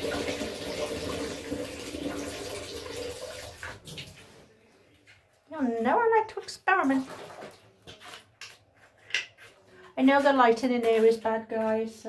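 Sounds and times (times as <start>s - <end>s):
water splashing into plastic bucket: 0.0s - 4.3s, 6.7s - 8.0s.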